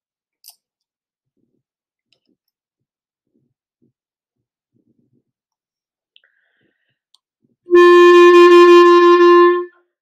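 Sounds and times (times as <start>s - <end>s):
clarinet playing a held note: 7.7s - 9.8s.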